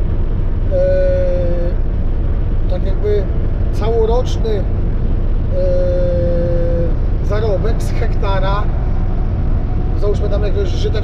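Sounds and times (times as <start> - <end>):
road and engine rumble: 0.0 - 11.0
man's held hesitation sound: 0.7 - 1.8, 5.5 - 7.6.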